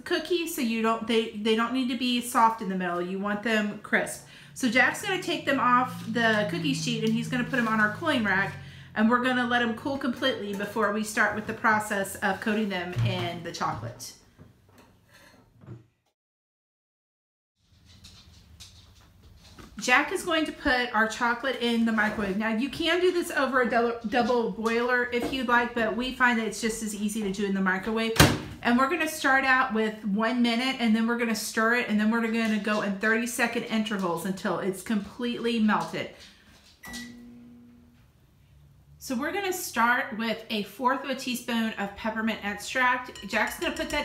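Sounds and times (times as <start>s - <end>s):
chime-like note ringing: 36.8s - 37.9s.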